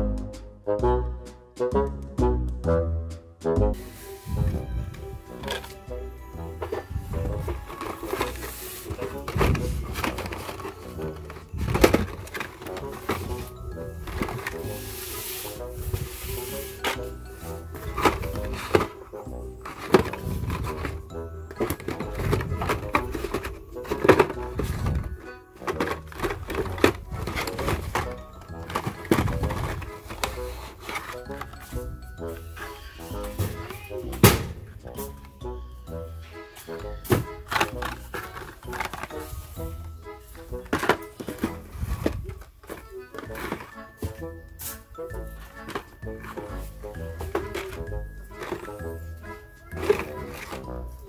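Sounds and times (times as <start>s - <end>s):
background music: 0.0s - 51.0s
plastic toy packages clacking: 3.8s - 51.0s.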